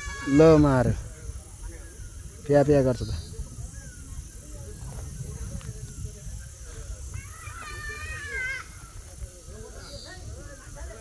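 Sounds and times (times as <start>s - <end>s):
people talking faintly: 0.0s - 11.0s.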